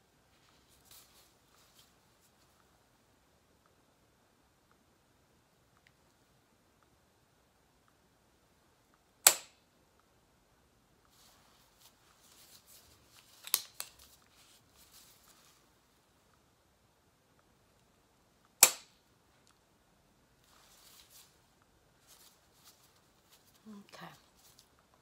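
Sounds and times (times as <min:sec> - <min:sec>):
faint rustling: 0:00.2 - 0:03.1, 0:11.0 - 0:16.5, 0:20.3 - 0:25.0
injector pen snapping: 0:09.2 - 0:09.6, 0:13.4 - 0:14.1, 0:18.6 - 0:19.0.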